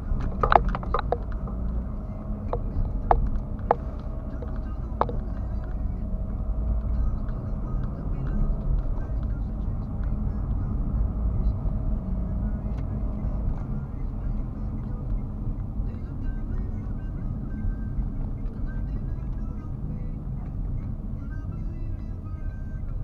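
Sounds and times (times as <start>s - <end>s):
car engine and tyre rumble: 0.0s - 23.0s.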